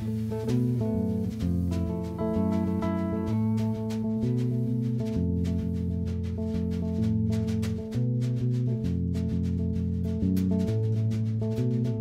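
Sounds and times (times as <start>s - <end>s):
electric bass: 0.0s - 12.0s
electric guitar: 0.0s - 12.0s.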